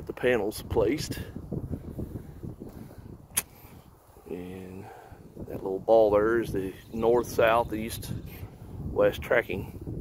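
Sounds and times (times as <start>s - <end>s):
sharp click: 3.3s - 3.6s.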